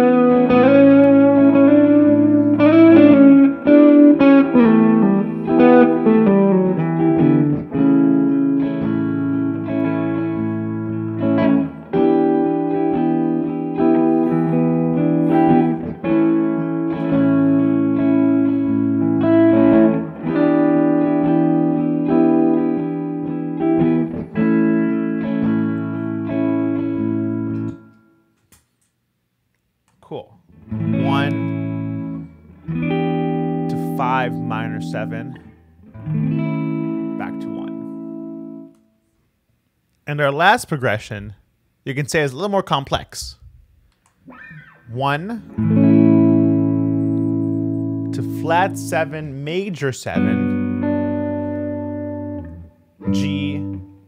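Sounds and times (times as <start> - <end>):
electric guitar playing: 0.0 - 28.3, 30.5 - 38.9, 44.2 - 54.0.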